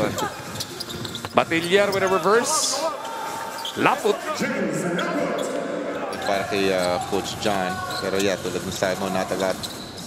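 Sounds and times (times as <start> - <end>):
commentator talking: 3.8 - 9.5.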